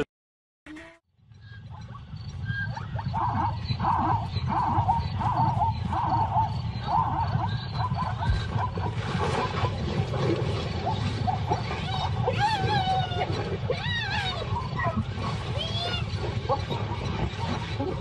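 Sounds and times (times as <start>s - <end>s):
hyenas calling: 1.7s - 18.0s.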